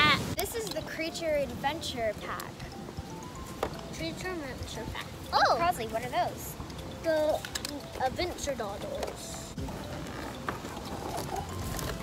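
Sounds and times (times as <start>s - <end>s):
plastic goggles ratchet clicks: 6.6s - 12.0s.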